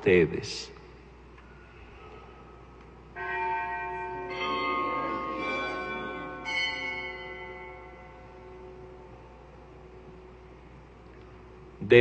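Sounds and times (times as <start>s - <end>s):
altar bells ringing: 3.1s - 9.7s.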